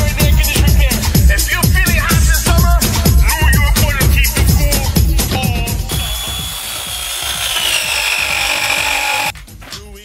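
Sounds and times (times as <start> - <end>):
pipe press tool motor whine: 5.9 - 9.3.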